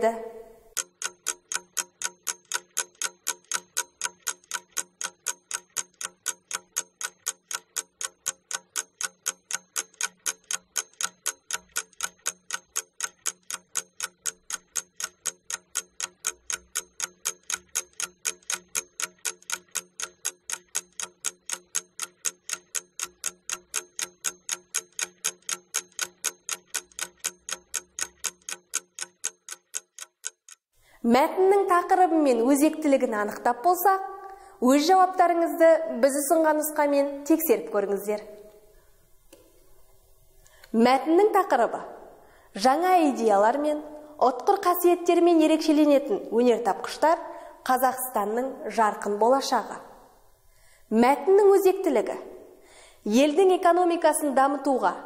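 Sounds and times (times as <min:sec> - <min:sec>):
clock ticking: 0:00.6 - 0:30.7.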